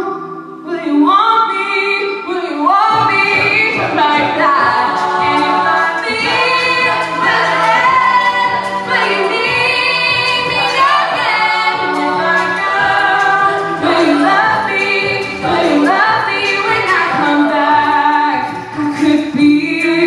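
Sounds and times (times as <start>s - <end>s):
female a cappella group singing: 0.0s - 20.0s.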